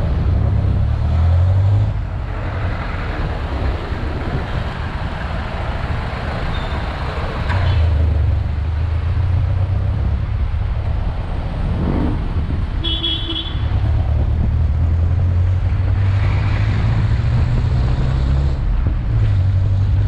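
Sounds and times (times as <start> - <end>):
road noise: 0.0 - 20.0
vehicle engine rumbling: 0.0 - 20.0
short horn toot: 12.8 - 13.7.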